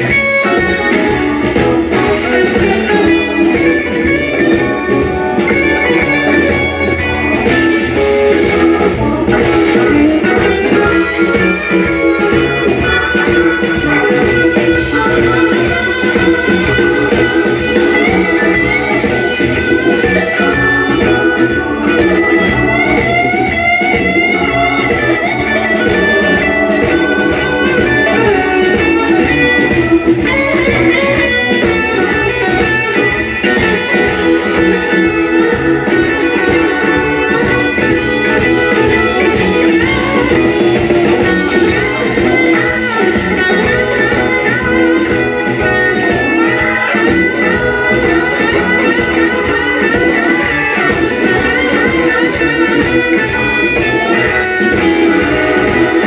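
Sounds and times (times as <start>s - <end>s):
electric blues band playing: 0.0s - 56.0s
electric guitar bent notes: 0.0s - 56.0s
steady drum beat: 0.0s - 56.0s.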